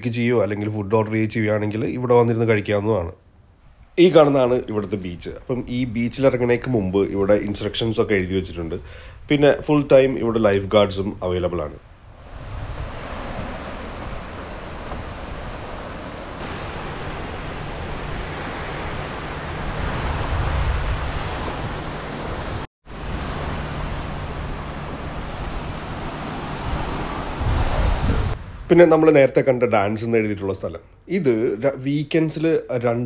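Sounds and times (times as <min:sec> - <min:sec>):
wind rumbling on microphone: 0:04.6 - 0:29.0
waves washing onto beach: 0:12.1 - 0:28.7.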